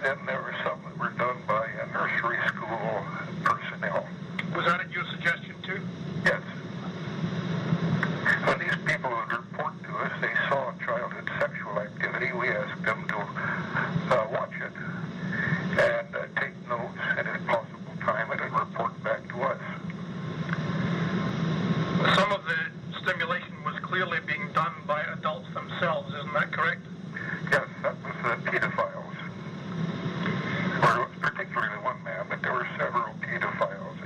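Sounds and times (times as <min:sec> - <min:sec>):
men talking on telephone: 0:00.0 - 0:07.0, 0:08.1 - 0:20.8, 0:21.9 - 0:29.6, 0:30.2 - 0:34.0.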